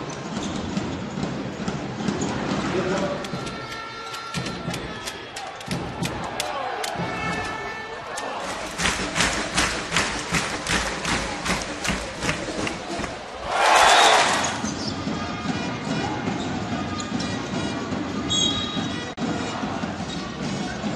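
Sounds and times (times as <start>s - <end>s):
arena crowd noise: 0.0s - 20.9s.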